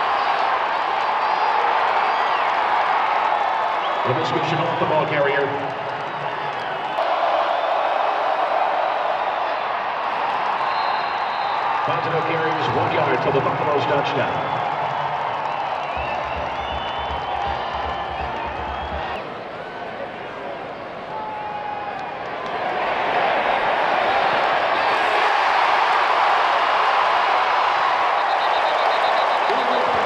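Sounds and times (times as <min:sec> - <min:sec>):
crowd cheering: 0:00.0 - 0:30.0
stadium crowd voices: 0:00.0 - 0:30.0.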